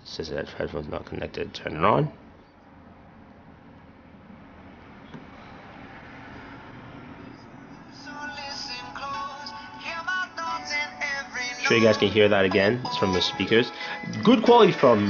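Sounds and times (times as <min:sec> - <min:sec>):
song with singing: 0:07.7 - 0:15.0.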